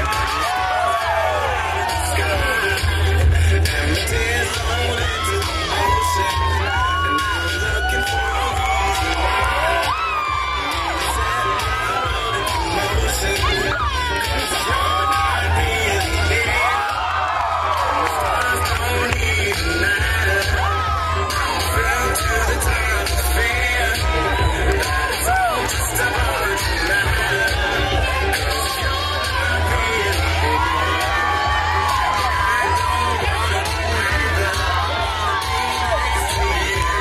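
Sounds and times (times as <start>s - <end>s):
audience cheering and whooping: 0.0s - 37.0s
dance music with heavy bass beat: 0.0s - 37.0s.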